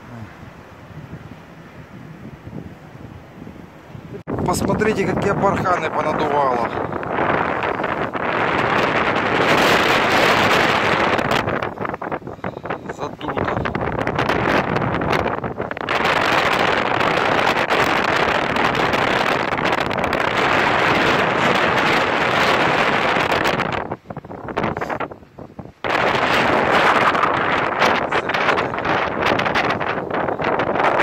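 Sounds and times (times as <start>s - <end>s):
blizzard wind buffeting microphone: 0.0s - 31.0s.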